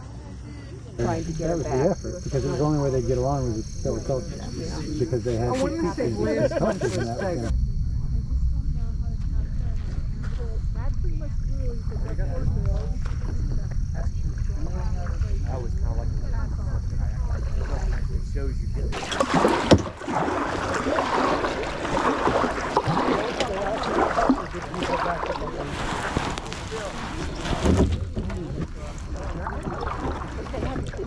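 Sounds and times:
indistinct chatter of people: 0.0 - 19.0
kayak paddling: 0.6 - 7.5, 11.9 - 31.0
wind rumble on microphone: 7.4 - 19.0
low rumble: 7.4 - 31.0.

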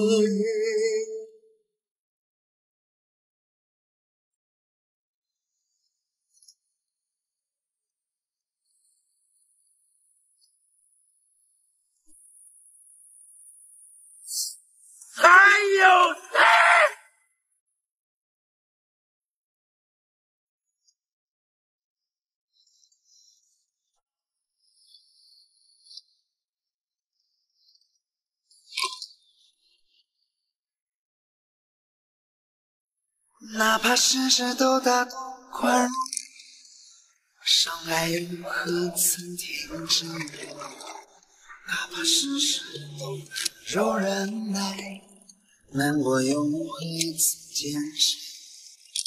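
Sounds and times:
man crying out: 15.2 - 17.0.

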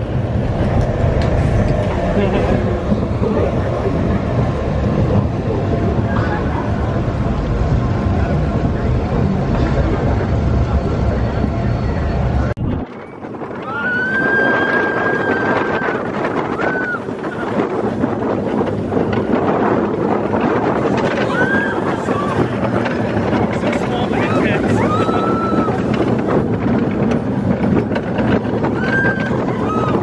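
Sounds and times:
roller coaster train rumbling: 0.0 - 30.0
wind rushing over microphone: 0.0 - 30.0.

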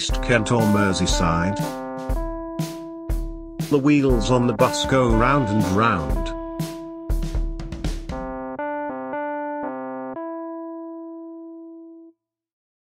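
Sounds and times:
drum hits: 0.0 - 8.6
keyboard chords: 0.0 - 12.1.

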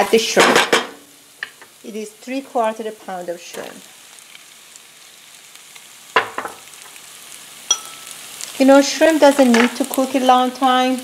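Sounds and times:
food sizzling in a pan: 0.0 - 11.0
utensil knocking on pan: 6.2 - 6.6
utensil clinking on pan: 7.7 - 8.2.

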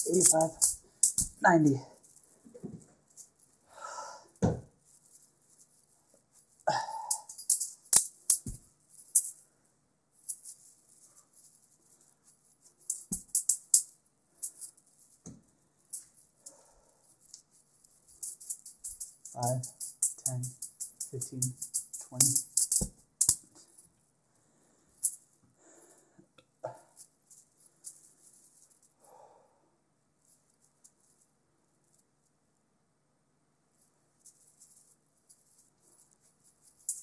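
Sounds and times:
juggling balls clicking: 0.0 - 1.4, 7.0 - 9.3, 12.9 - 13.9, 18.2 - 23.6.

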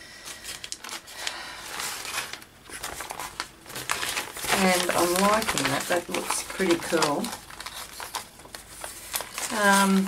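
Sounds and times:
paper rustling as peeled up: 0.3 - 10.0.

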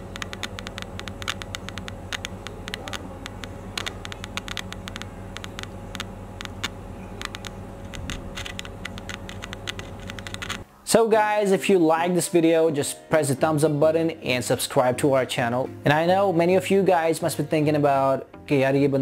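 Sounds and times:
speaker crackling with clicks: 0.0 - 10.7
steady low hum: 0.0 - 10.9.

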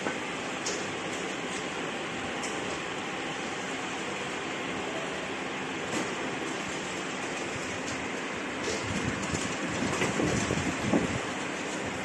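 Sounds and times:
conveyor mechanical hiss: 0.0 - 12.0
bottles rattling on conveyor: 6.0 - 12.0.

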